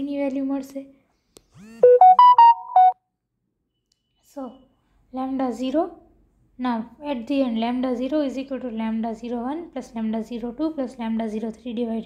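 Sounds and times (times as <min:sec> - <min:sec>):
phone alert tune: 0:01.8 - 0:03.0.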